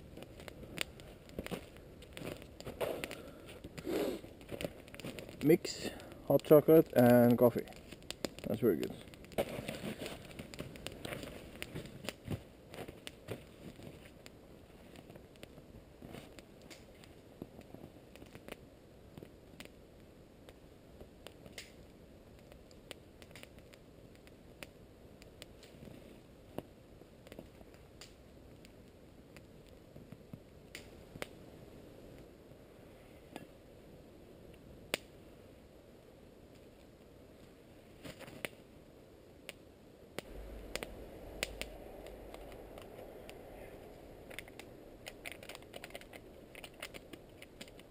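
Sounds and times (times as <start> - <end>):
campfire crackling and popping: 0.0 - 32.4, 34.5 - 47.9.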